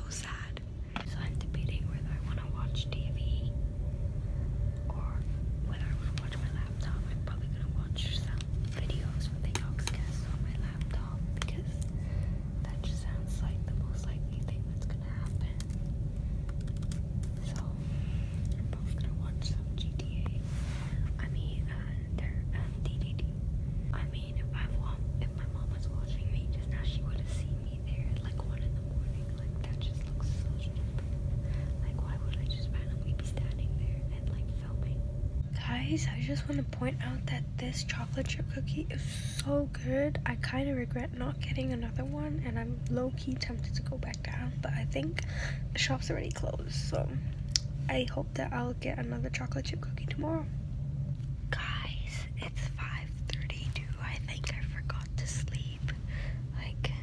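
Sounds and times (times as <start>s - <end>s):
constant hum: 0.0s - 57.0s
low rumble: 0.0s - 57.0s.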